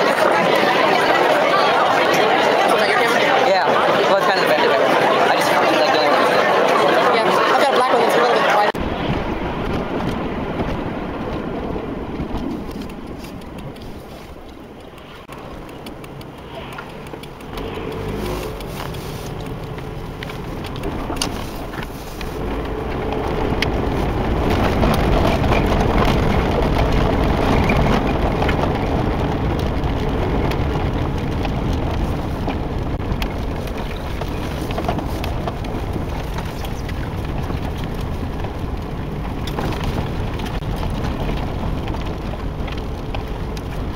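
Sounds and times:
people talking at once: 0:00.0 - 0:08.8
faint voices: 0:00.0 - 0:08.9
steady low rumble: 0:08.8 - 0:43.9.

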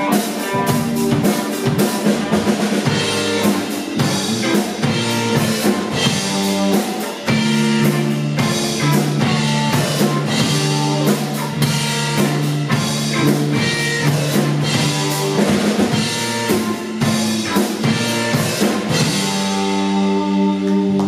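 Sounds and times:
drum kit: 0:00.0 - 0:21.0
electric guitars and bass: 0:00.0 - 0:21.0.

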